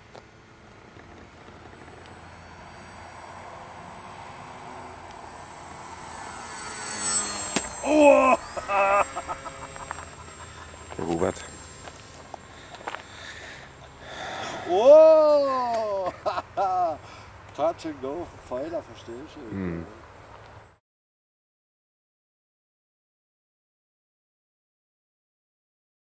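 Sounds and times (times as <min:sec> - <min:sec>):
glider rushing air: 0:00.4 - 0:14.7.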